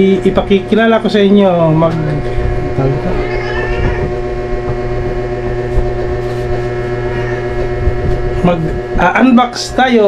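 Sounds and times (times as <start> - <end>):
steady motor hum: 0.0 - 10.0.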